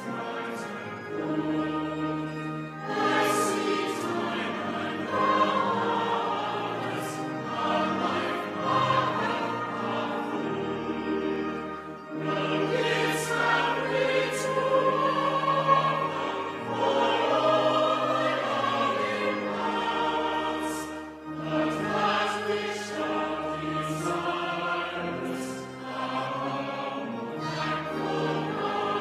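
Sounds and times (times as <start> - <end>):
choir singing long held notes: 0.0 - 29.0.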